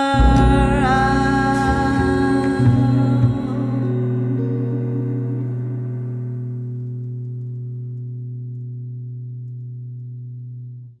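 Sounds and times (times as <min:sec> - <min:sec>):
guitar and double bass chord: 0:00.0 - 0:10.9.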